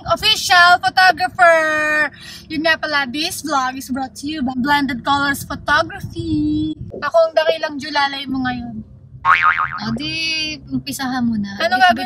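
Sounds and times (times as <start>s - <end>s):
springy wobbling sound effect: 9.3s - 10.1s.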